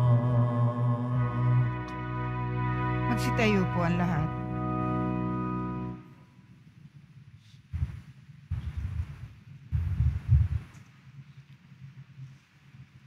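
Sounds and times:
low muffled thuds and rumbling: 7.8 - 10.7.

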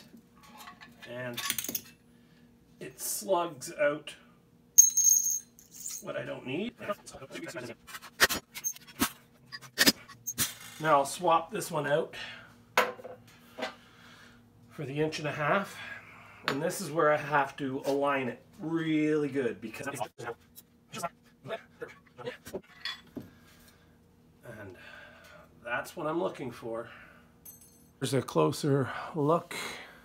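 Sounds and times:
sharp metal clinks: 4.8 - 6.0
metallic ring: 4.8 - 6.1.

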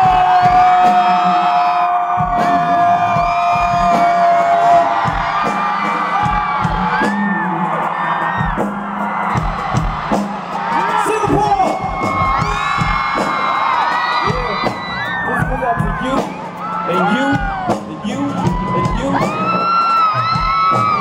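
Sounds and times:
crowd cheering and whooping: 0.0 - 21.0
live band music: 0.0 - 21.0
thumping drum beat: 2.2 - 21.0.

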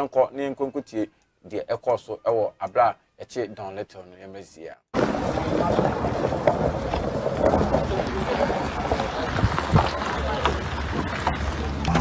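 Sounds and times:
people's voices: 5.0 - 12.0.

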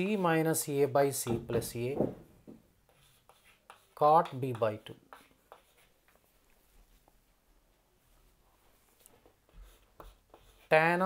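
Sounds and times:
chalk strokes on chalkboard: 2.8 - 7.0, 8.6 - 11.0.

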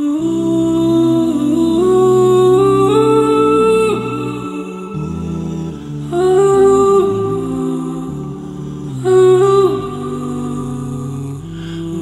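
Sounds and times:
sustained chords: 0.0 - 12.0
wordless vocal line: 0.0 - 12.0.

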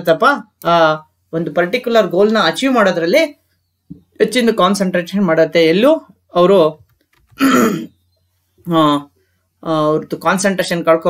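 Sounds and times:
man clearing his throat: 7.4 - 8.0.

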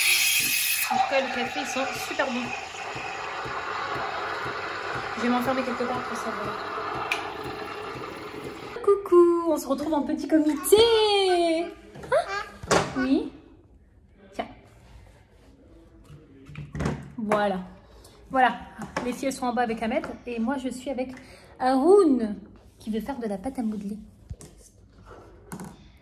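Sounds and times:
steam wand hissing: 0.0 - 4.8.

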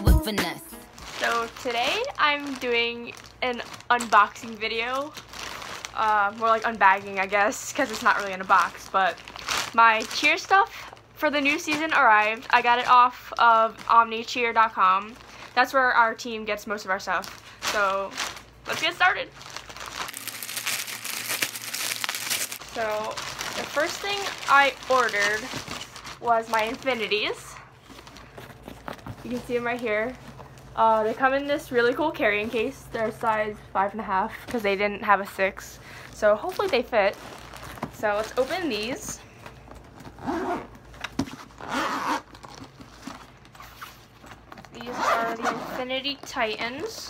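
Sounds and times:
plastic bag crinkling and rustling: 0.8 - 33.4, 35.9 - 45.4
zipper pulled open: 40.0 - 40.7, 41.5 - 42.3, 44.8 - 45.9.

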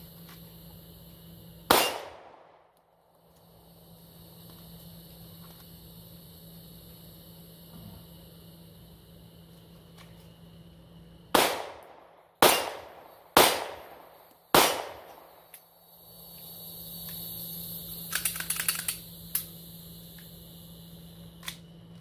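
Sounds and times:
pistol shots echoing: 1.7 - 2.6, 11.3 - 15.3
metallic clicks of pistol handling: 18.1 - 19.5.

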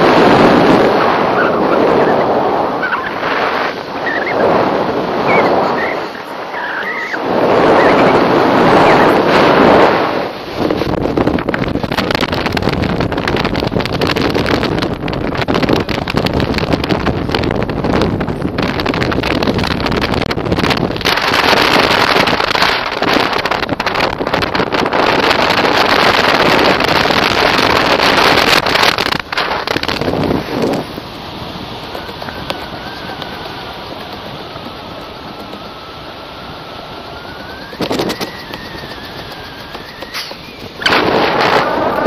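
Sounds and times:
wind rushing over microphone: 0.0 - 42.0.

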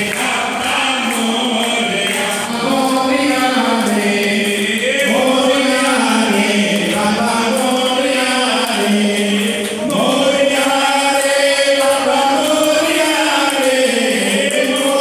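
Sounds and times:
group singing devotional chant: 0.0 - 15.0
man chanting into a microphone: 0.0 - 15.0.

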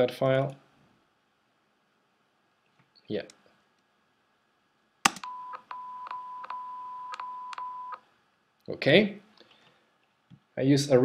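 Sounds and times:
electronic test-tone beep: 5.2 - 8.0.

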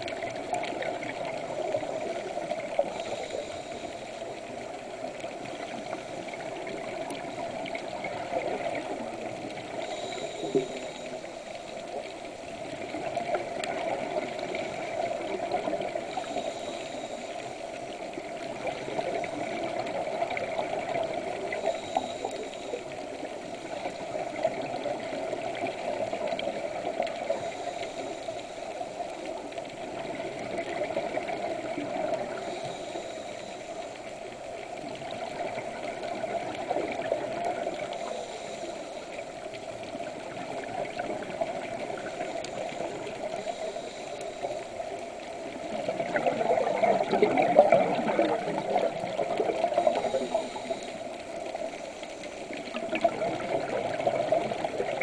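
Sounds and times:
regulator inhale hiss: 0.0 - 46.7, 47.6 - 52.8
underwater rush: 0.0 - 55.0.

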